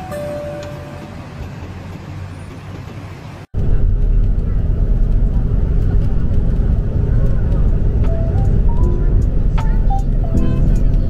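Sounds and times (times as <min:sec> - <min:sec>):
moving bus rumble: 0:00.0 - 0:11.0
traffic noise: 0:00.0 - 0:11.0.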